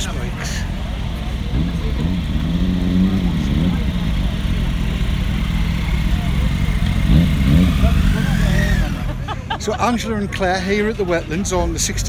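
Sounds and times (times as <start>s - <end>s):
motorcycle engines revving: 0.0s - 12.0s
voices chattering: 0.0s - 12.0s.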